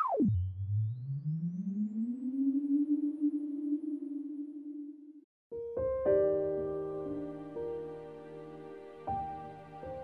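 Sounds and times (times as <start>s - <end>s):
low synthesized hum rising: 0.0s - 5.2s.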